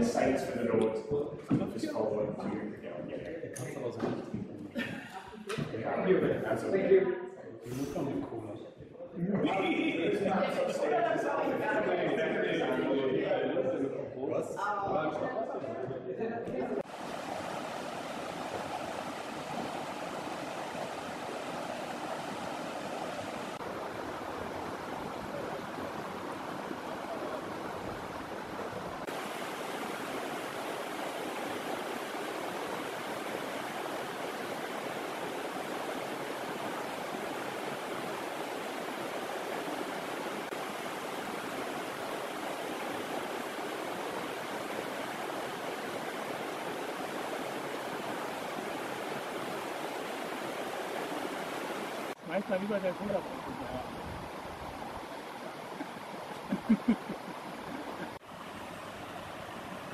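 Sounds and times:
river rushing over rocks: 16.8s - 59.9s.

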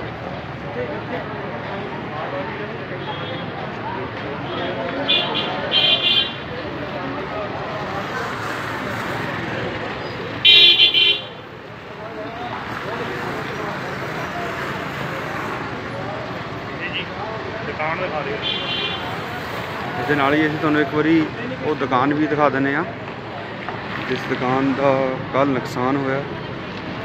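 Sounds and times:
street noise: 0.0s - 27.0s
voices: 0.0s - 27.0s
vehicle horn honking: 4.5s - 6.4s, 10.4s - 11.4s, 18.4s - 19.1s.

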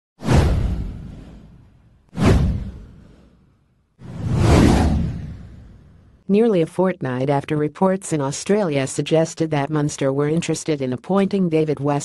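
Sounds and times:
whoosh with low rumble: 0.2s - 6.2s.

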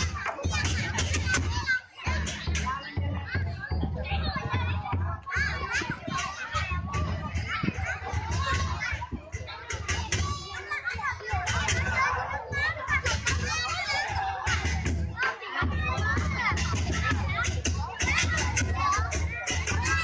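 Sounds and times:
crowd of voices: 0.0s - 20.0s
drum beating: 0.0s - 20.0s.

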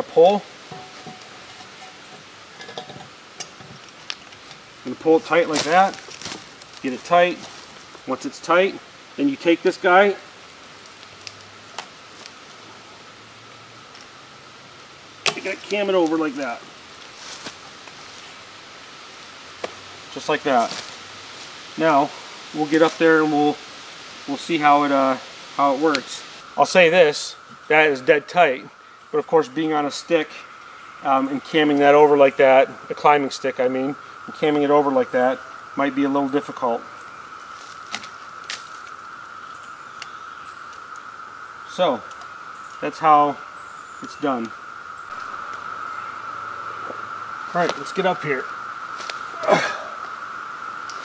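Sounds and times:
high insect drone: 0.0s - 51.0s
outdoor background hiss: 0.0s - 51.0s
short rustle: 16.9s - 18.4s.

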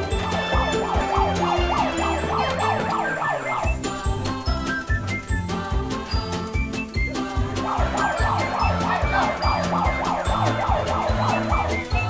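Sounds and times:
siren-like wail: 0.0s - 3.8s, 7.6s - 12.0s
background music with steady beat: 0.0s - 12.0s.

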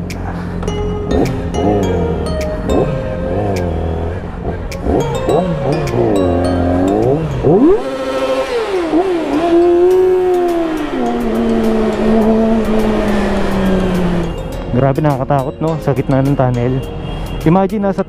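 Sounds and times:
motorcycle engines revving in tunnel: 0.0s - 14.5s.

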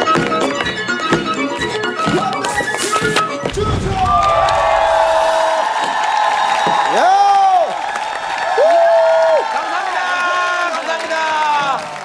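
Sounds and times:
audience cheering and applauding: 3.5s - 12.0s
loud drawn-out shouts: 3.5s - 12.0s
high-pitched screams and whoops: 3.8s - 9.8s.

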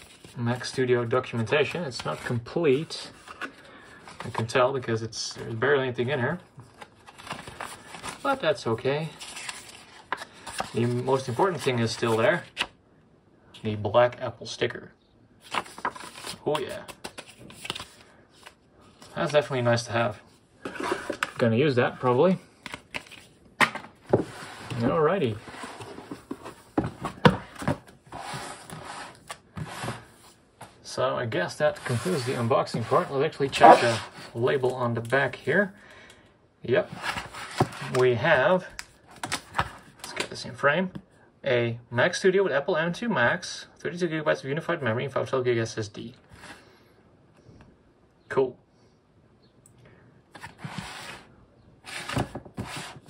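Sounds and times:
cardboard rubbing against cardboard: 31.8s - 34.3s.

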